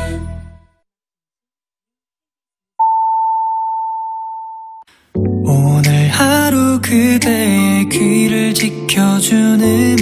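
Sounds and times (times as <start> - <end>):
long steady beep: 2.8 - 4.8.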